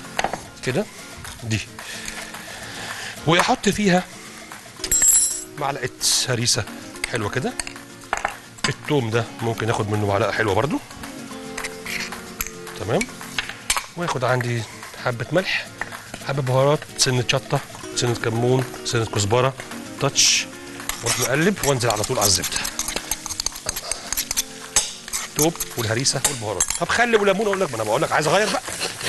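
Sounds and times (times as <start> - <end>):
livers sizzling in butter: 20.6 - 29.0
metal spoon clinking on bowl: 26.2 - 26.9.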